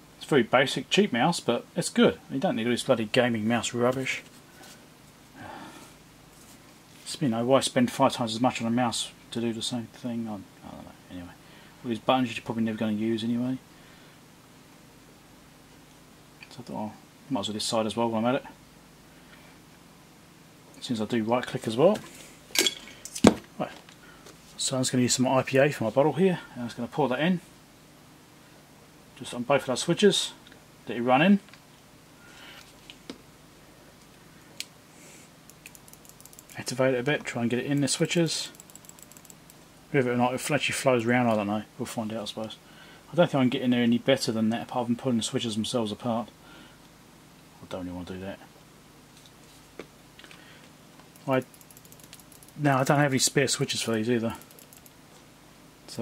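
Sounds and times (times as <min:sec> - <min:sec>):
tools set down on a workbench: 0:22.5 - 0:23.5.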